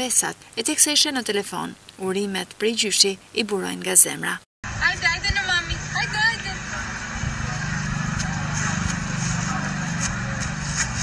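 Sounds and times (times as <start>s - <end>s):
steady low hum: 4.7s - 11.0s.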